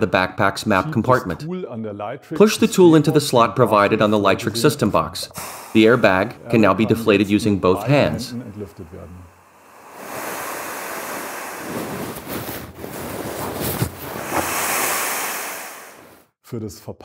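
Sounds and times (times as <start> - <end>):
air rushing out of airbag: 5.4 - 6.3, 8.5 - 16.3.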